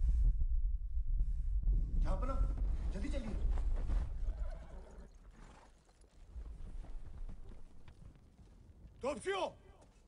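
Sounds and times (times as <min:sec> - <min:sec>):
heavy low rumble: 0:00.0 - 0:04.0
horse whinnying: 0:04.2 - 0:05.8.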